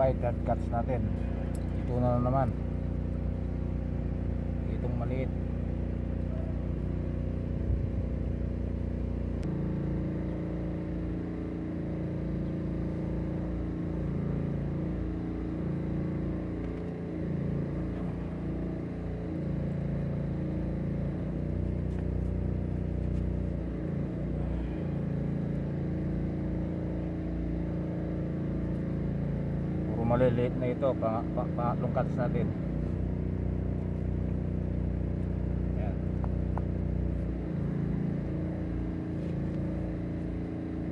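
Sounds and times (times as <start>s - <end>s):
motor engine humming: 0.0s - 40.9s.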